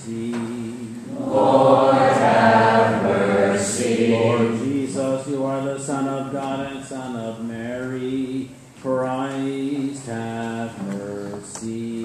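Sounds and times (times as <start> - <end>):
choir singing: 1.1 - 5.0.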